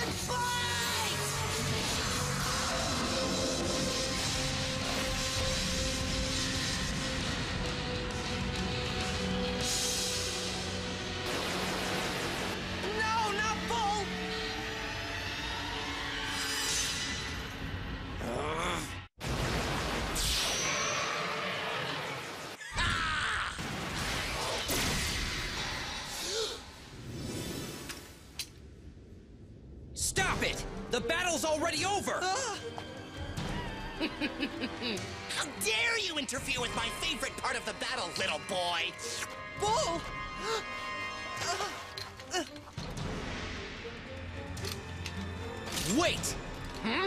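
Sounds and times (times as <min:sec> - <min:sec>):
dramatic background music: 0:00.0 - 0:19.0, 0:30.0 - 0:47.0
shattering and crash effects: 0:23.6 - 0:26.1.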